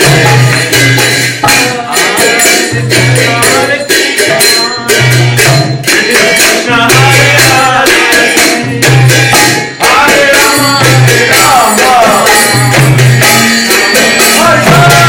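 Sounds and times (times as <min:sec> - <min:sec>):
hand cymbals jingling: 0:00.0 - 0:15.0
voices singing: 0:00.0 - 0:15.0.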